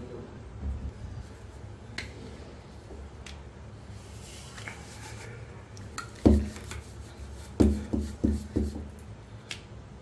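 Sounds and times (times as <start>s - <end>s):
hands patting dough: 5.9s - 9.7s.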